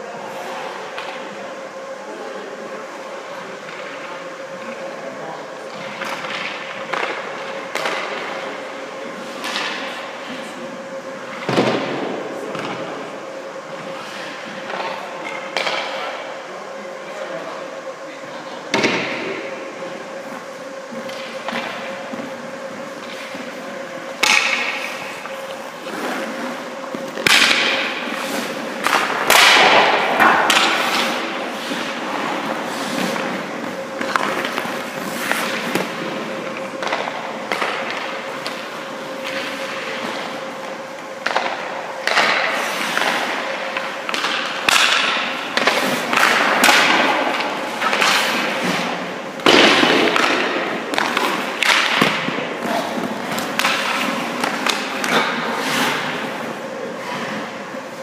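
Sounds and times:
steady hum: 0:00.0 - 0:58.0
skate blades scraping ice: 0:20.3 - 0:40.5, 0:41.3 - 0:58.0.

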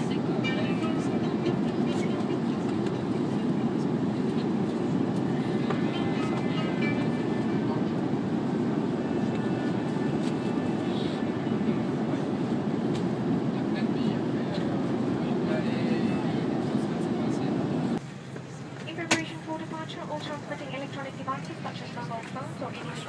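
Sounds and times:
airliner cabin rumble: 0:00.0 - 0:23.0.

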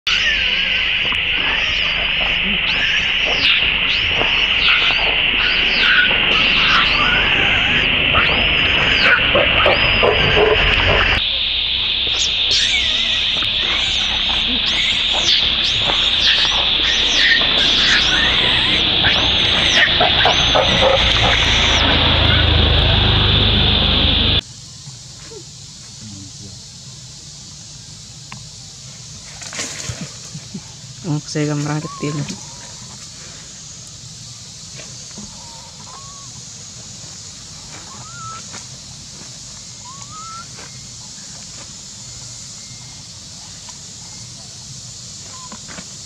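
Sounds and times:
baby monkey screaming: 0:00.1 - 0:11.2, 0:12.2 - 0:23.4, 0:31.6 - 0:32.8, 0:35.3 - 0:36.4, 0:37.7 - 0:38.6, 0:39.8 - 0:40.8
steady high-pitched drone: 0:00.1 - 0:25.4.

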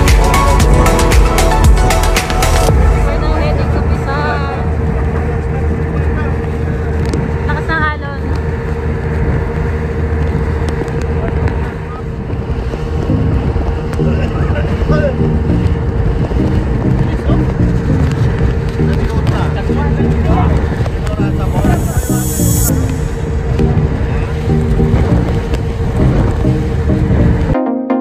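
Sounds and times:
hull rushing over water: 0:00.0 - 0:27.6
speedboat motor running: 0:00.0 - 0:27.6
wind buffeting microphone: 0:02.7 - 0:27.6.

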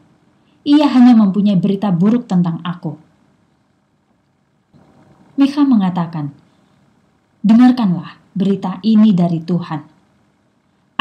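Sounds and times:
faint low noise: 0:00.0 - 0:11.0.

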